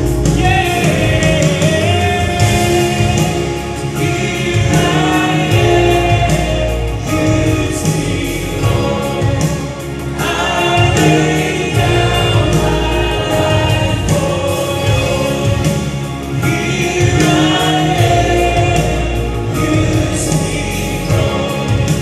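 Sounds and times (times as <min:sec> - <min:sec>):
backing voices singing: 0:00.0 - 0:22.0
man singing into a microphone: 0:00.0 - 0:22.0
steady bass: 0:00.0 - 0:22.0.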